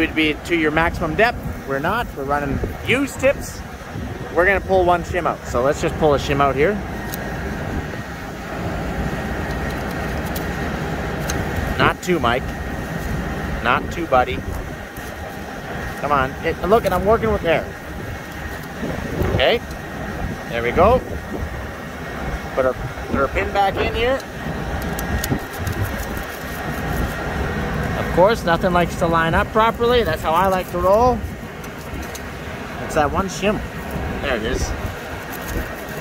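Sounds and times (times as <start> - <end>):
farm machinery droning: 0.0 - 36.0
low wind rumble on microphone: 0.0 - 36.0.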